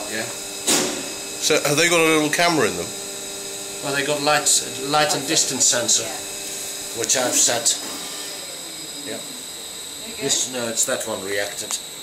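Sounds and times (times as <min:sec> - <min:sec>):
machinery hiss: 0:00.1 - 0:12.0.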